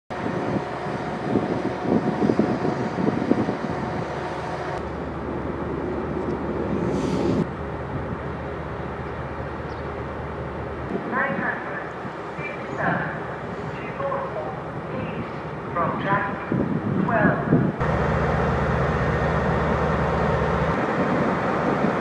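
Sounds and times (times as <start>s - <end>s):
diesel engine drone: 0.1s - 11.0s, 17.8s - 22.0s.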